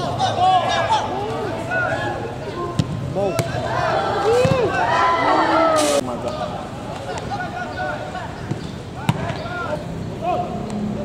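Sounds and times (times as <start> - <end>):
players shouting: 0.0 - 10.7.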